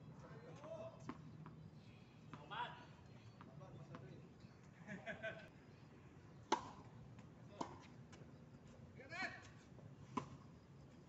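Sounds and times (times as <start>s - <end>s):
tennis ball struck by racket: 6.5s - 6.9s, 7.6s - 7.9s.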